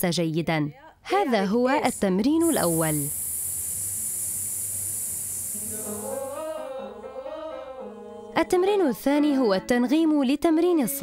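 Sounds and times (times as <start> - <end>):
long hissed exhale: 1.8 - 6.7
person singing sustained notes: 2.4 - 8.3.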